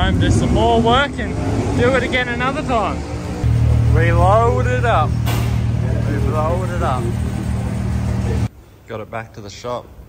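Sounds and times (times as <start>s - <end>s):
low machine hum with rushing: 3.4s - 8.5s
man speaking: 3.7s - 9.9s.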